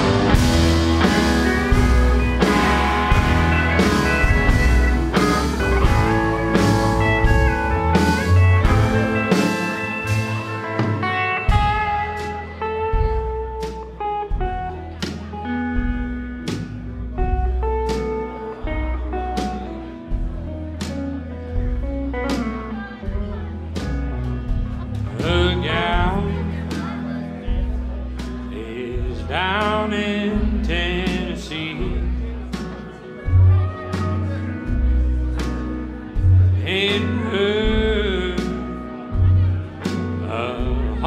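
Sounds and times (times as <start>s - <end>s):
country band playing instrumental: 0.0s - 41.0s.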